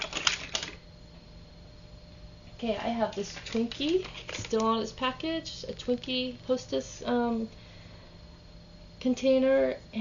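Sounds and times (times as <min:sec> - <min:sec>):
toy cars clicking and clattering: 0:00.0 - 0:00.8.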